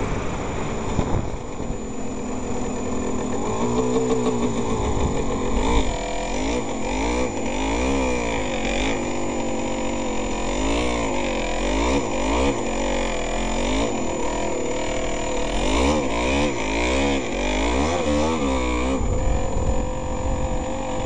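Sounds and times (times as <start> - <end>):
two-stroke engine revving: 0.0 - 21.0.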